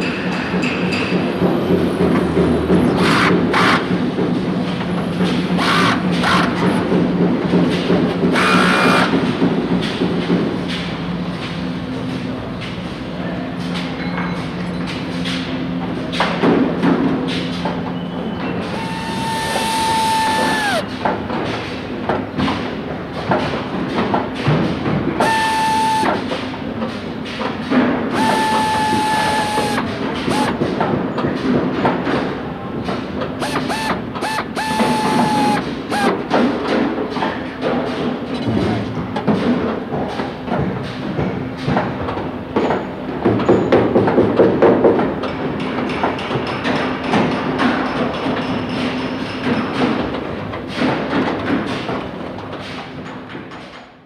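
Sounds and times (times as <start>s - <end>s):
machine hum: 18.6s - 20.9s, 25.2s - 26.3s, 28.1s - 30.7s, 33.4s - 36.3s
nut-tightening tool whining: 18.7s - 20.9s, 25.2s - 26.2s, 28.1s - 30.6s, 33.4s - 36.2s.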